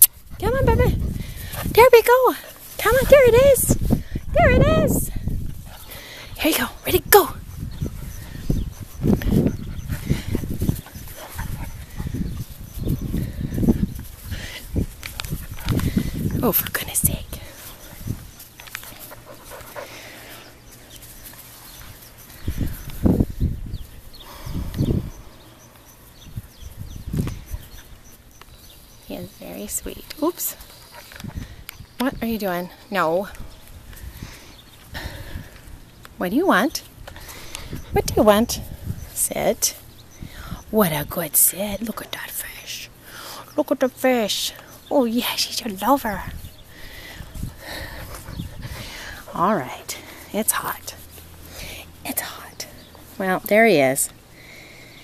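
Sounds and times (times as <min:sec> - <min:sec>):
puppy rustling: 0:00.0 - 0:24.2
panting breaths: 0:00.1 - 0:04.4, 0:05.0 - 0:06.8, 0:07.4 - 0:16.4, 0:17.2 - 0:23.0, 0:30.4 - 0:32.0, 0:32.7 - 0:35.7, 0:37.0 - 0:39.2, 0:46.4 - 0:52.0.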